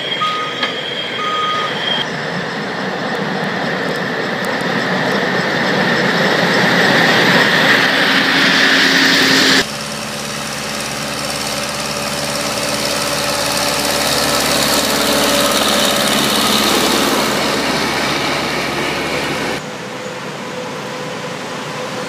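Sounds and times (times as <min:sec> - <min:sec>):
high-pitched rail-running sound: 0:00.0 - 0:22.0
track maintenance machine engines: 0:00.0 - 0:22.0.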